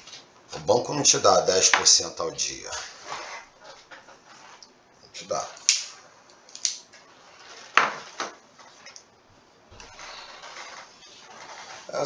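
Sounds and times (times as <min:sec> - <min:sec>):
soft steady hiss: 0:00.0 - 0:12.0.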